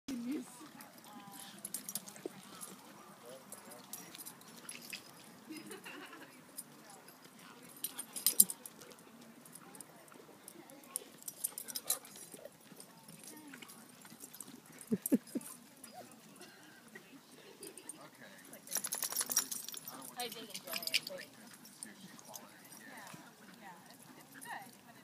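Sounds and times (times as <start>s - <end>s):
faint voices: 0.1s - 25.0s.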